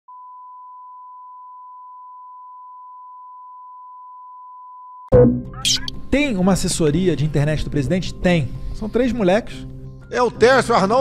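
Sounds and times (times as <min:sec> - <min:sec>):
steady test tone: 0:05.1 - 0:06.0.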